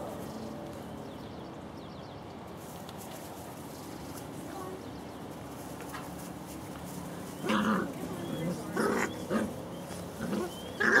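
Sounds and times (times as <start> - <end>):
puppies growling and yipping: 7.2 - 11.0.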